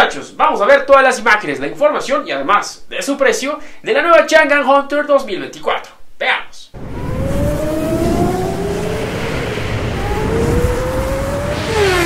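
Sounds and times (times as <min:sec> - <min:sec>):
racing car engine accelerating: 0:06.8 - 0:12.0.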